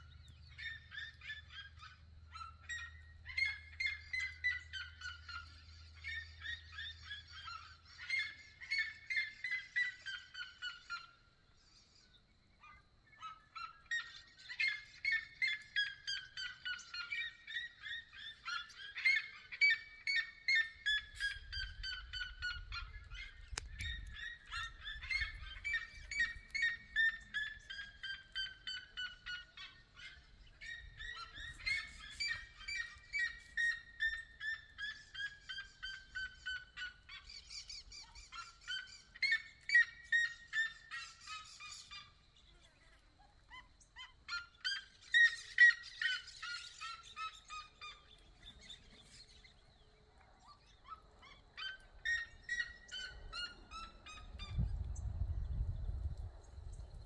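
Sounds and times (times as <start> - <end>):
birds yelping calls: 0.0 - 56.0.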